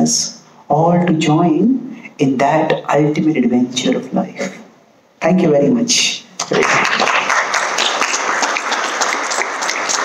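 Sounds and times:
audience applauding: 0:06.4 - 0:10.0.

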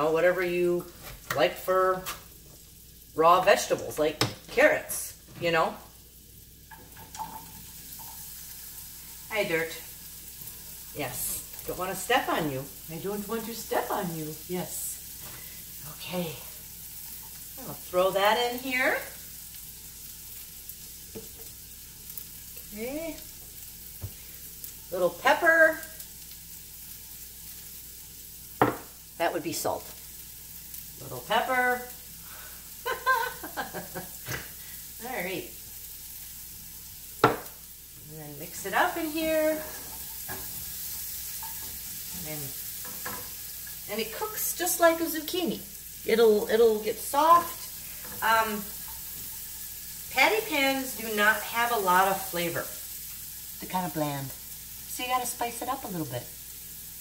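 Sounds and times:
vegetables sizzling in a pan: 0:00.0 - 0:57.0.

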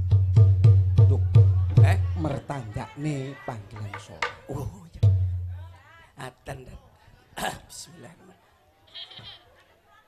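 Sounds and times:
stage talk: 0:00.7 - 0:10.0.

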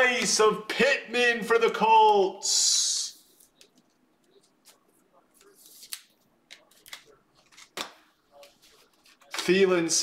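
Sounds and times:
cards scraping and clicking: 0:03.4 - 0:09.6.

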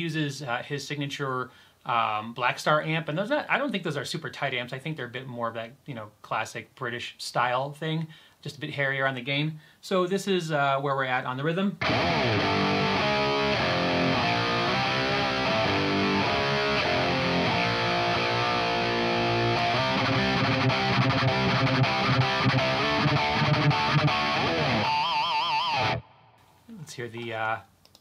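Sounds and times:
distorted electric guitar: 0:11.8 - 0:26.4.

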